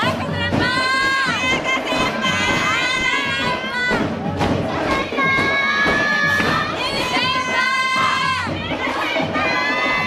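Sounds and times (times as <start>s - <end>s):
girls shouting and cheering: 0.0s - 10.0s.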